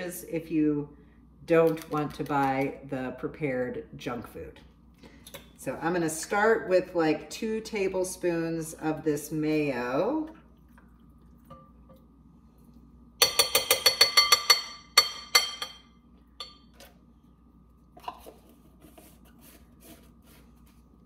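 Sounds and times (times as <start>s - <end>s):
utensil clinking glass bowl: 13.2s - 16.8s.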